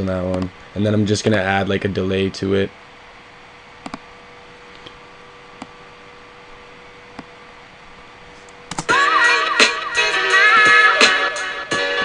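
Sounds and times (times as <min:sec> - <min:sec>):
faint hum: 0:00.0 - 0:12.0
microphone hiss: 0:00.0 - 0:12.0
computer mouse clicks: 0:03.8 - 0:04.0
music playback: 0:08.7 - 0:12.0.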